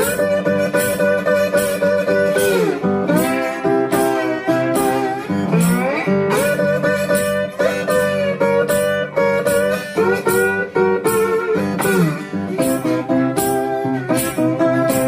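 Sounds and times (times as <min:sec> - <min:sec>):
acoustic guitar playing blues: 0:00.0 - 0:15.0.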